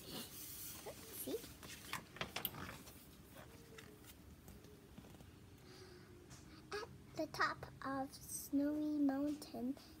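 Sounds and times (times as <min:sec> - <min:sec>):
paper page rustling: 0:00.4 - 0:05.3.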